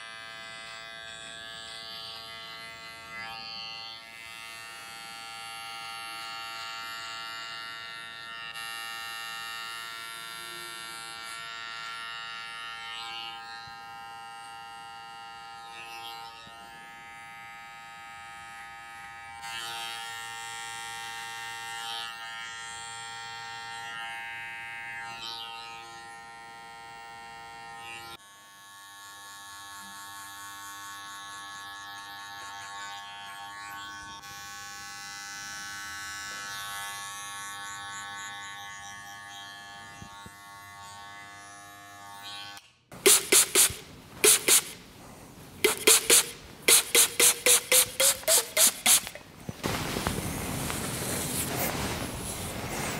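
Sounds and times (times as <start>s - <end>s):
cordless hair clipper buzzing: 0.0s - 49.4s
electric hair trimmer buzzing: 0.0s - 51.6s.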